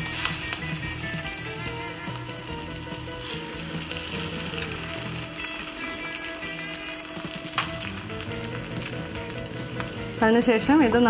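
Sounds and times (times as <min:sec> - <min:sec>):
soft background music: 0:00.0 - 0:11.0
vegetables sizzling in a frying pan: 0:00.0 - 0:11.0.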